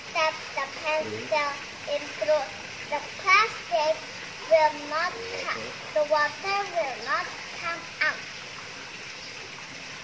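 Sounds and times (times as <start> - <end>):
fountain water trickling: 0.0 - 10.0.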